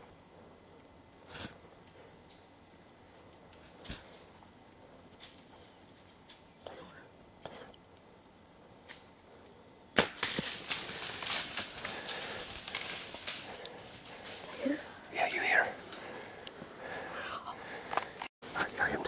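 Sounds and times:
deer crashing through dry leaves: 10.0s - 14.9s
rustles in leaves: 10.0s - 16.1s.

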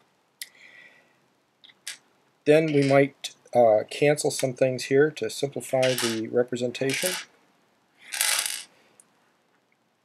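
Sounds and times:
pebbles clattering on paper: 2.7s - 3.0s, 5.8s - 6.2s, 6.9s - 7.2s, 8.1s - 8.7s.

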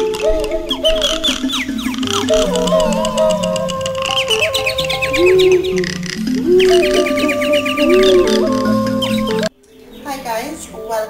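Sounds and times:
bird-like chirps: 0.0s - 11.0s
music of sustained tones: 0.0s - 11.0s.

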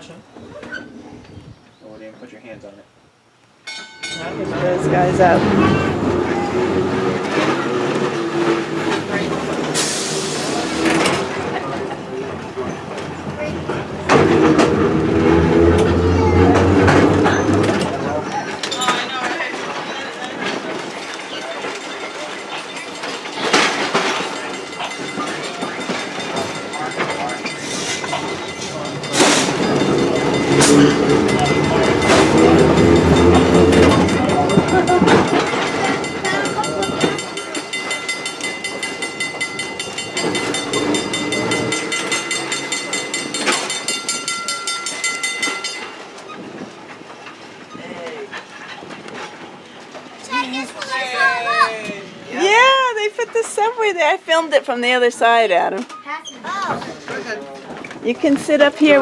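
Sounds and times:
trolley wheels clicking over rail joints: 3.6s - 59.0s.

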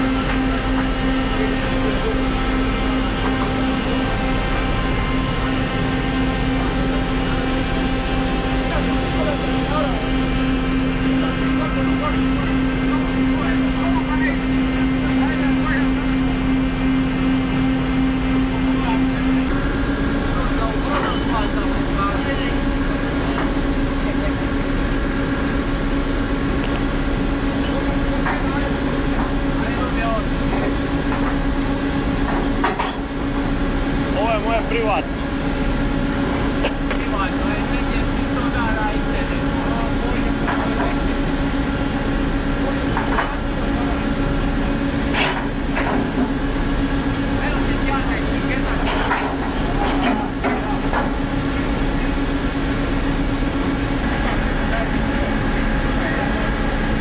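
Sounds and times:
ship's machinery droning: 0.0s - 57.0s.

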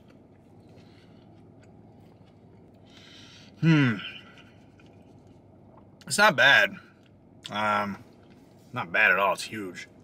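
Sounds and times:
person chewing food: 0.0s - 6.1s.

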